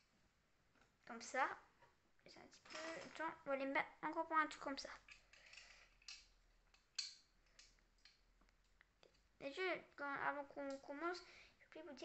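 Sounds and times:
plastic bricks clicking together: 5.0 - 8.2.

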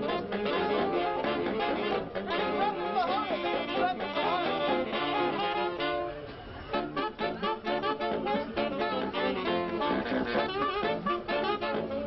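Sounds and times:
saxophones playing jazz: 0.0 - 12.0.

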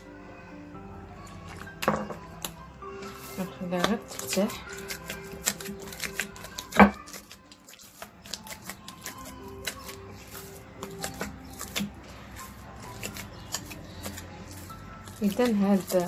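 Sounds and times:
faint background music: 0.0 - 16.0
dough slapping and squelching: 1.4 - 16.0.

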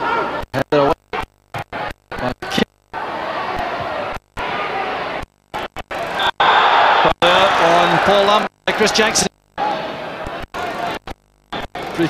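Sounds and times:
stadium crowd cheering: 2.9 - 11.0.

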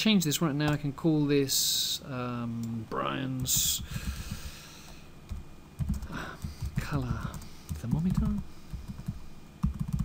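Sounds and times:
computer keyboard typing: 5.3 - 10.0.

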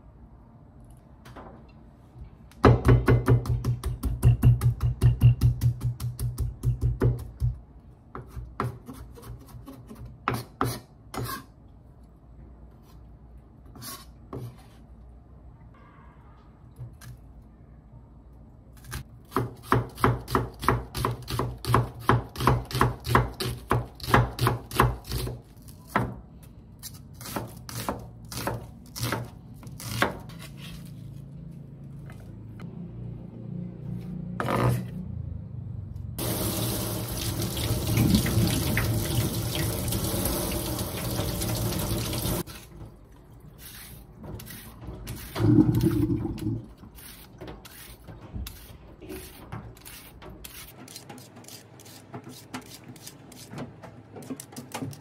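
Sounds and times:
knife chopping on wooden board: 18.8 - 26.2
water running into metal sink: 36.2 - 42.4.

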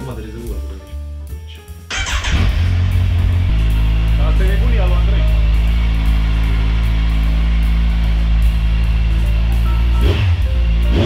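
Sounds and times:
motorcycle engine starting and idling: 1.9 - 11.0.

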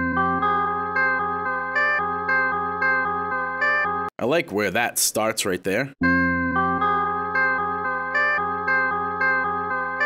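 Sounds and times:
chopped synth chord loop: 0.0 - 4.1, 6.0 - 10.0.

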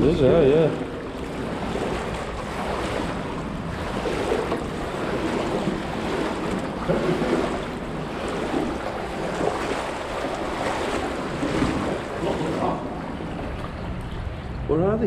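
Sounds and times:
water sloshing and splashing: 0.0 - 14.7
person laughing: 6.8 - 7.4.

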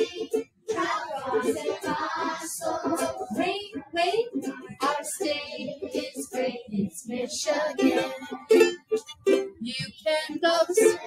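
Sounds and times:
children singing: 0.0 - 8.8, 10.5 - 11.0.

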